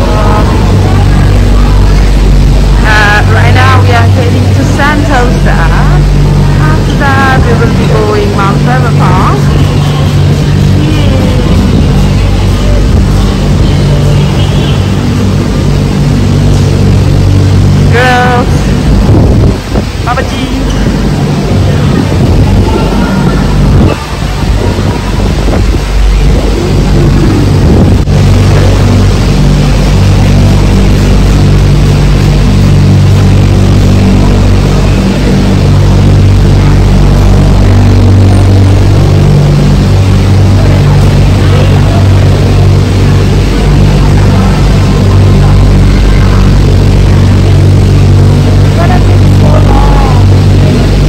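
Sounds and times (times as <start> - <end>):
cable car machinery humming: 0.0 - 51.0.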